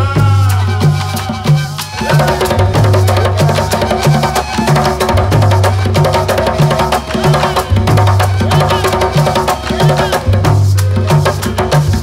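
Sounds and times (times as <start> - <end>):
flute melody: 0.0 - 11.8
maraca shaking: 0.0 - 12.0.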